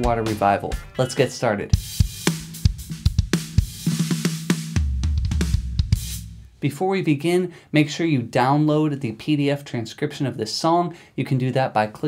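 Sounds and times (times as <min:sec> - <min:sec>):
snare and tom strokes: 0:01.8 - 0:06.5.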